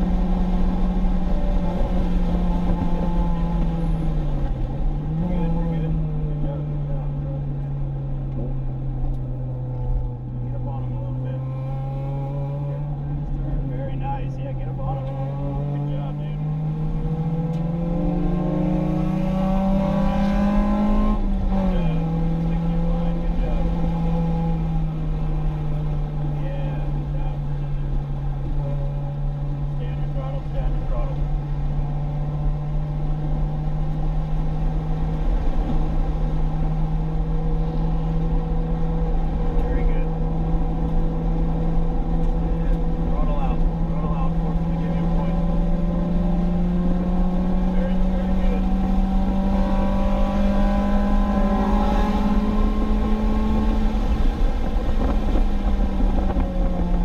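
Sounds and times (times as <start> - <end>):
car engine revving high: 0.0 - 57.0.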